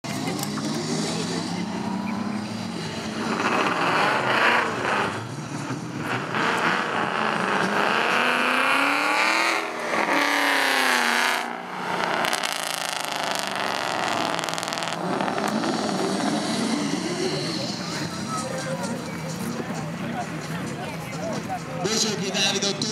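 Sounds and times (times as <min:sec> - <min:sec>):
race car engines revving: 0:00.0 - 0:22.9.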